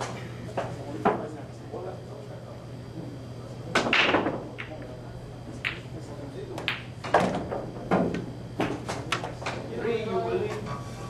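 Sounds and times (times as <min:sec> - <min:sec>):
pool balls clacking: 0:03.8 - 0:09.6.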